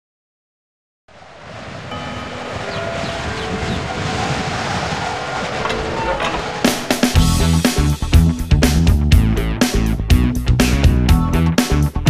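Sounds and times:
rushing noisy swell: 1.1s - 9.6s
faint steady tones: 1.9s - 7.2s.

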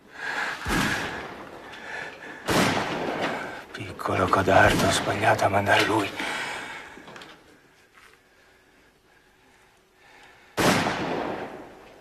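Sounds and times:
loud gunshot: 0.6s - 1.4s, 2.5s - 3.5s, 4.6s - 5.1s, 10.6s - 11.7s.

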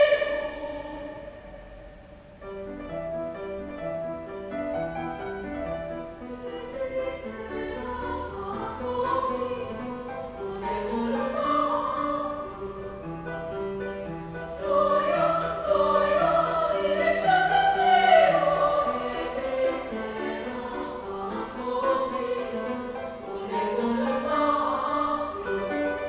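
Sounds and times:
women's choir singing: 0.0s - 1.9s, 6.1s - 26.0s.

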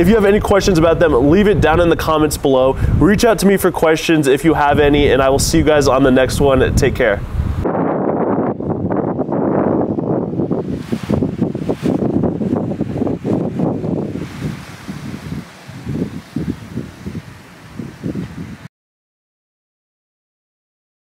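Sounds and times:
wind buffeting microphone: 0.0s - 18.7s.

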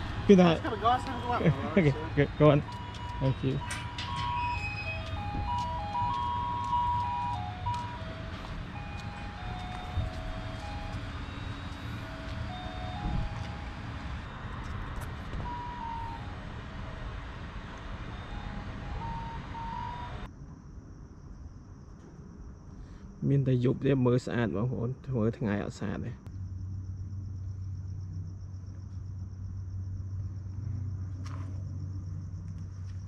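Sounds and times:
electronic chime tune: 0.6s - 14.4s.

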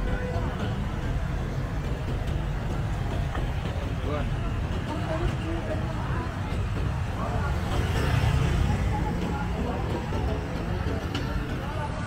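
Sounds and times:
passersby talking: 0.0s - 12.0s
traffic engine and tyre rumble: 0.0s - 12.0s.

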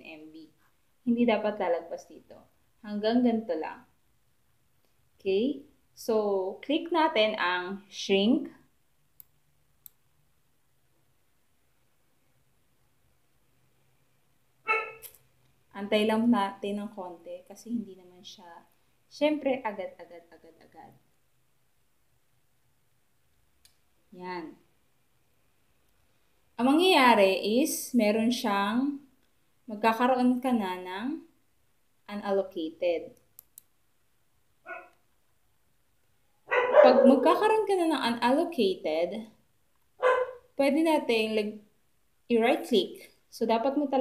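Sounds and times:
dog barking: 14.7s - 15.1s, 34.7s - 35.0s, 36.5s - 37.3s, 40.0s - 40.5s
faint clicks: 33.2s - 33.7s.

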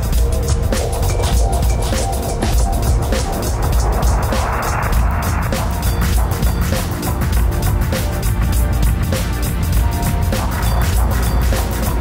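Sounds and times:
electronic synth track with beat: 0.0s - 12.0s
rushing noise: 1.0s - 7.2s.

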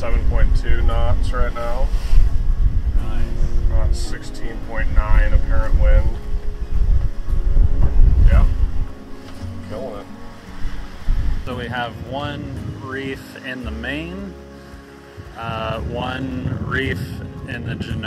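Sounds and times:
wind buffeting microphone: 0.0s - 13.2s, 15.2s - 18.0s
voices: 3.0s - 6.3s, 9.6s - 10.1s, 11.5s - 14.4s, 15.4s - 18.0s.

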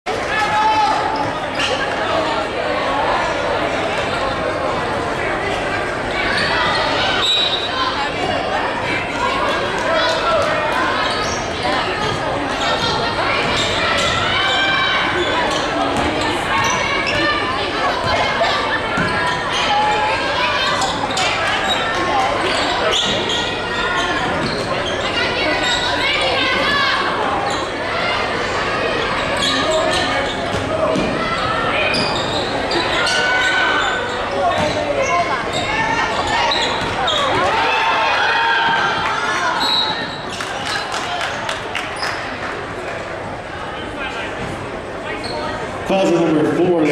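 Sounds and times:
voices calling out in hall: 0.0s - 46.9s.

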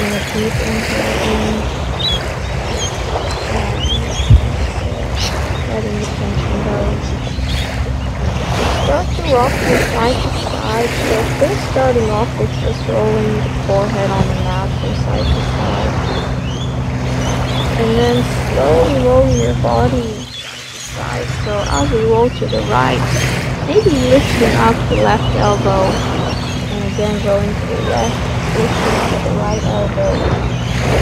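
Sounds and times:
steady low drone: 0.0s - 31.0s
steady outdoor rush: 0.0s - 31.0s
wind rumbling on microphone: 0.0s - 31.0s.

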